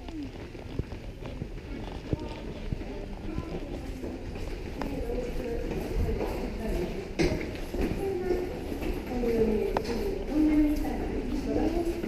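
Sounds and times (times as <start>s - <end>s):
faint voices: 0.0s - 12.0s
footsteps on pavement: 0.0s - 12.0s.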